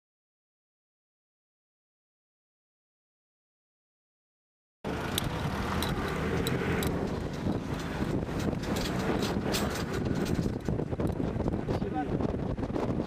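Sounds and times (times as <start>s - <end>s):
van engine and road rumble: 4.8s - 13.0s
sharp knocks and rattles: 4.9s - 11.7s.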